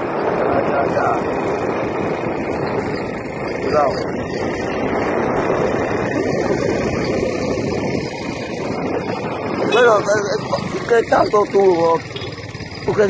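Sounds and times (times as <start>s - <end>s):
road noise: 0.0s - 13.0s
wind buffeting microphone: 0.0s - 13.0s.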